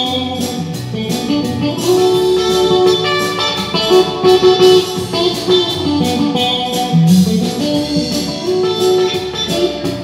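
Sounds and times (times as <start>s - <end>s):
band backing with steady beat: 0.0s - 10.0s
electric guitar solo: 0.0s - 10.0s.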